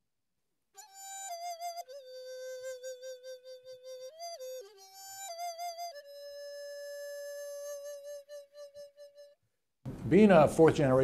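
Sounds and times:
solo flute long note: 0.8 - 9.4.

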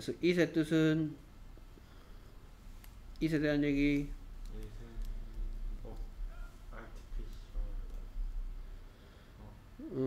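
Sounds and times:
low steady hum: 0.0 - 10.0
man talking: 3.2 - 8.3.

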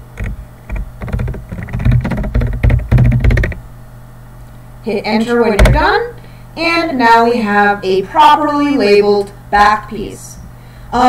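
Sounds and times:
keyboard key clicks: 0.2 - 3.6.

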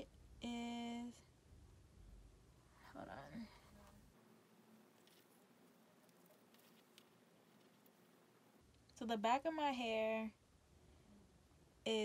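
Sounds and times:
soft rustles in hair: 2.7 - 8.6.

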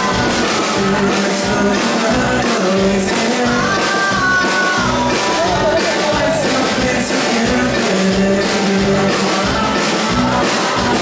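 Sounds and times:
acoustic guitar: 0.0 - 11.0
drum kit: 0.0 - 11.0
live rock band playing: 0.0 - 11.0.

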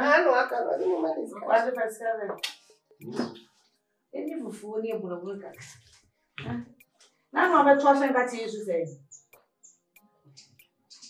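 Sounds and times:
person talking: 0.0 - 2.4, 7.4 - 9.0.

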